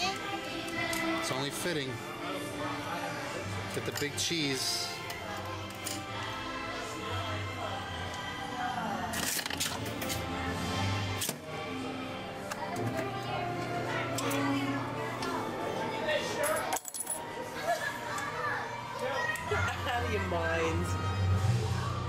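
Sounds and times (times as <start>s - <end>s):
background music: 0.0s - 22.0s
metallic clinks of coins: 16.4s - 17.3s.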